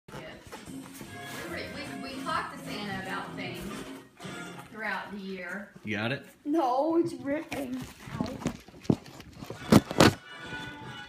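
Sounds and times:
television music: 0.1s - 6.4s, 8.5s - 11.0s.

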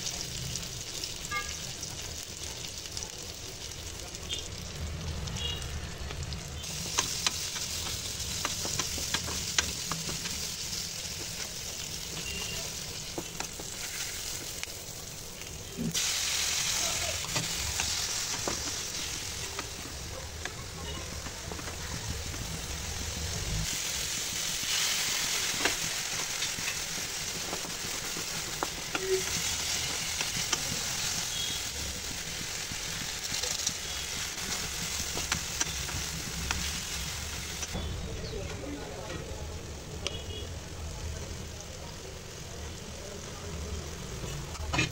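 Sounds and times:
onions sizzling in oil: 0.0s - 44.9s
spatula scraping and tapping pan: 6.8s - 10.5s.

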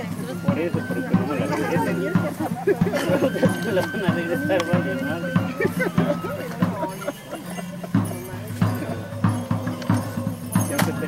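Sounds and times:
drum beating sharp knocks: 7.9s - 11.0s.

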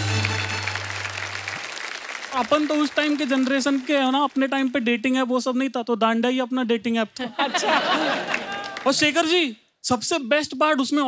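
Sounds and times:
audience applauding: 0.0s - 5.2s, 7.8s - 9.2s.

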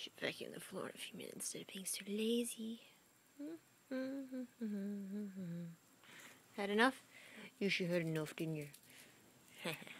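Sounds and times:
woman humming: 3.4s - 5.9s.

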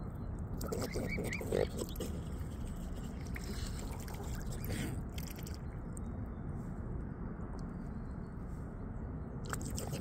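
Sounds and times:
swans snuffling in water: 0.6s - 5.6s, 9.4s - 10.0s.

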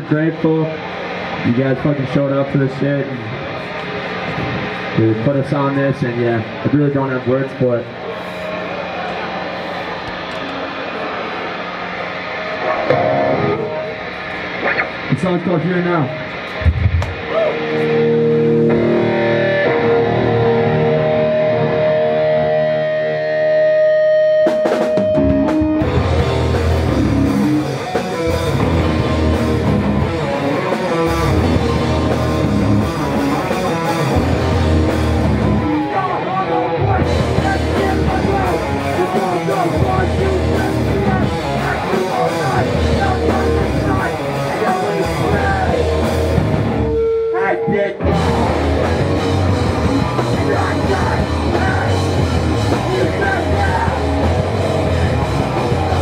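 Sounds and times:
distorted electric guitars: 0.0s - 56.0s
drums: 0.0s - 56.0s
punk band playing live: 0.0s - 56.0s.

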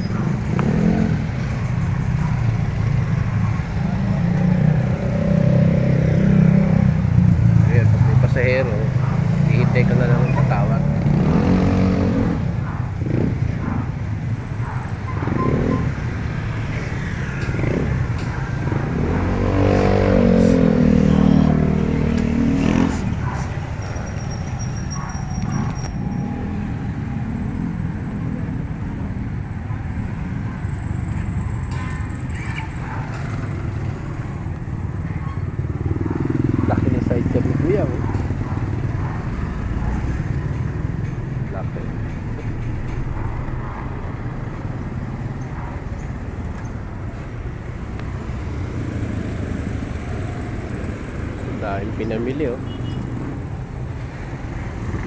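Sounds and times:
motorcycle engines passing: 0.0s - 55.0s
traffic rumble: 0.0s - 55.0s.

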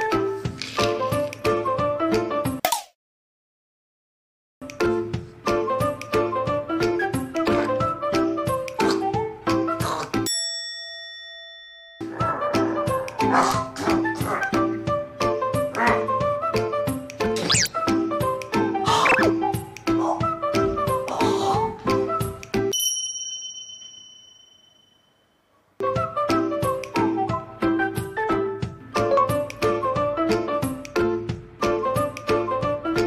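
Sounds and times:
background music: 0.0s - 2.6s, 4.6s - 10.3s, 12.0s - 22.8s, 25.8s - 33.0s
bell-like ding: 10.3s - 12.0s, 22.7s - 25.4s.

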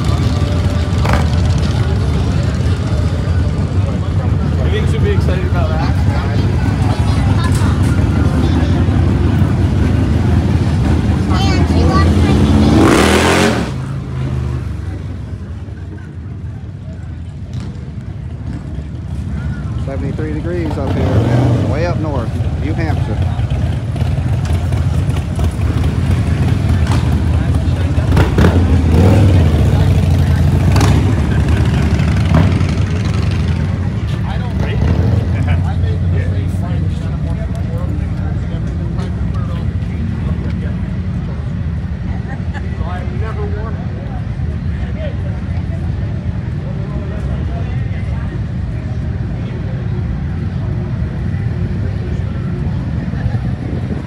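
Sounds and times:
motorcycle engines running: 0.0s - 54.0s
people's voices: 0.0s - 54.0s.

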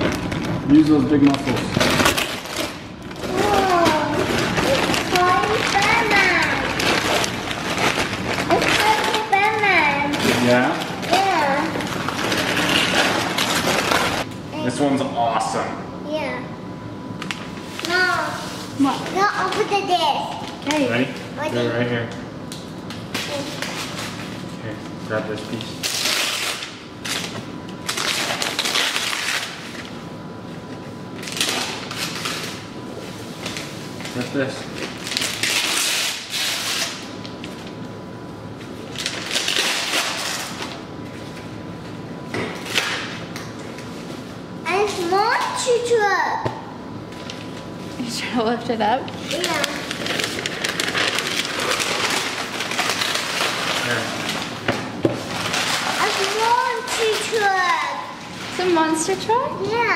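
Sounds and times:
wrapping paper crinkling and tearing: 0.0s - 14.3s, 17.2s - 21.2s, 22.8s - 30.0s, 30.7s - 37.8s, 38.5s - 41.5s, 42.6s - 46.0s, 47.1s - 47.8s, 49.1s - 59.9s
paper rustling: 49.2s - 54.5s, 55.3s - 58.0s.

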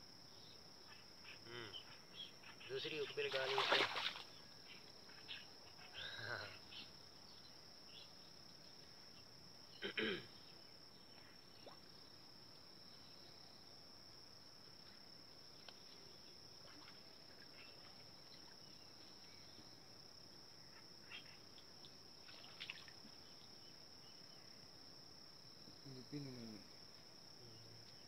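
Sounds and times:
crickets chirping: 0.0s - 28.0s.

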